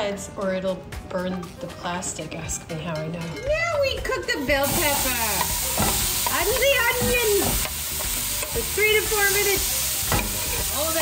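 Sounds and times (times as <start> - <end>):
vegetables sizzling in oil: 4.4 - 11.0.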